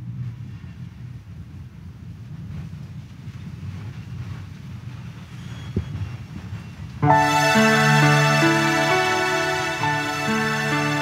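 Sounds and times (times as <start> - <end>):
low rumbling hall noise: 7.0 - 11.0.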